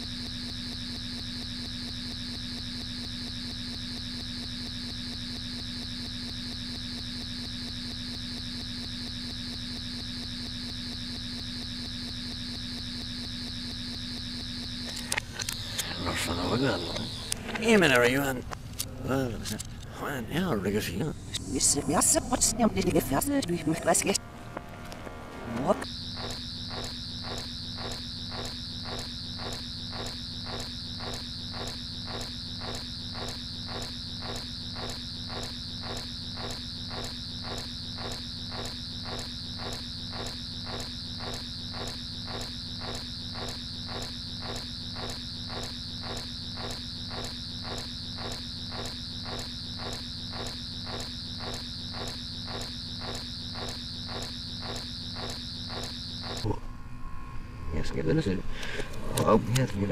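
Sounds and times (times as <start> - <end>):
pulsing high electronic whine: 0.0 - 19.3, 20.0 - 59.9.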